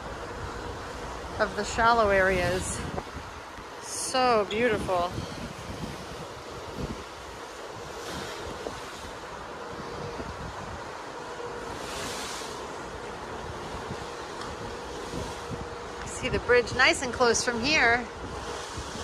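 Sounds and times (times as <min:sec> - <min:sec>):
choppy sea wash: 0:00.0 - 0:19.0
faint steady hum: 0:00.0 - 0:19.0
wind rushing over microphone: 0:00.0 - 0:19.0.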